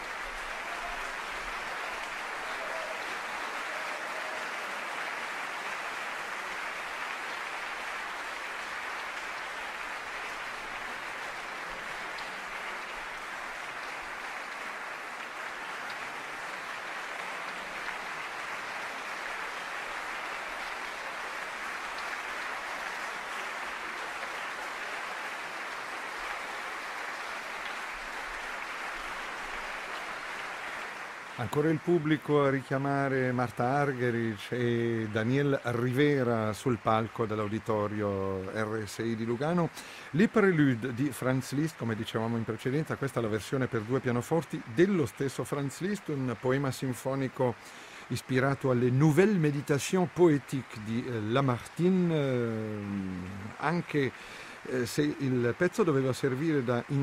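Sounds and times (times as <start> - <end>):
audience applauding: 0.0 - 57.0.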